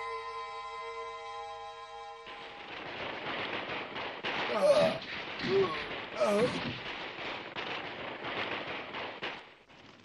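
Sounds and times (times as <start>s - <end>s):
crackle of musket gunfire: 2.2s - 10.0s.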